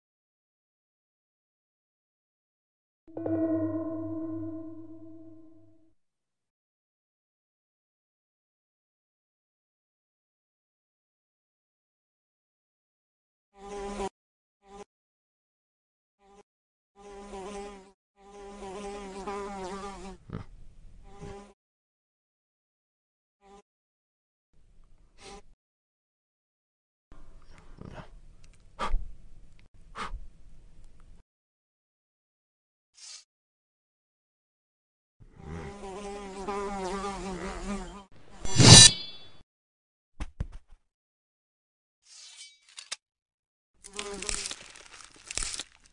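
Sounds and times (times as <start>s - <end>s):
housefly buzzing: 13.6s - 14.9s, 17.0s - 20.2s, 35.3s - 38.9s
sword swish with metallic ring: 38.5s - 39.4s, 42.1s - 42.8s.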